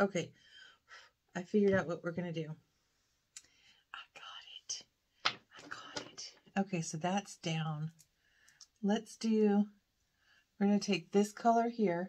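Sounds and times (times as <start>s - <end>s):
woman whispering: 3.9s - 4.9s, 5.5s - 6.4s.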